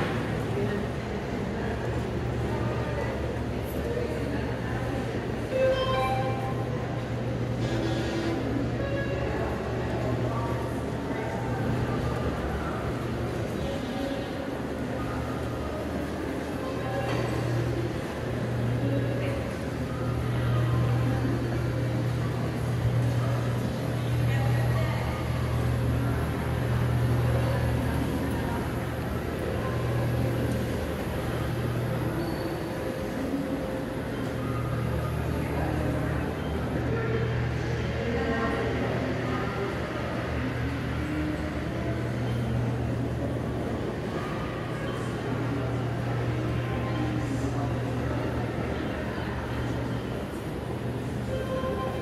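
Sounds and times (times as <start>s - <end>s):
faint indistinct voices: 0.0s - 52.0s.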